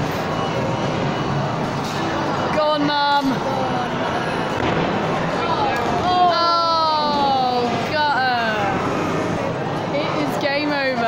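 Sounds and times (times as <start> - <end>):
busy amusement arcade din: 0.0 - 11.0.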